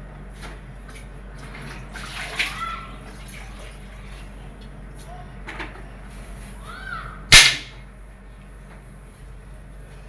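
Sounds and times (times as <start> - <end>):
mop sloshing in bucket of water: 1.4 - 4.3.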